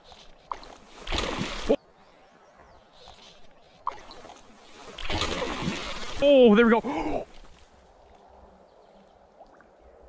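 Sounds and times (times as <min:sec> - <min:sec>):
creek rushing: 0:02.9 - 0:08.4.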